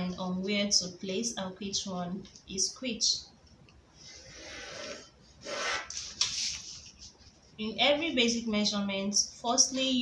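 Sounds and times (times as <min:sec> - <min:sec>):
ruler and pencil sliding on paper: 0:04.0 - 0:06.9.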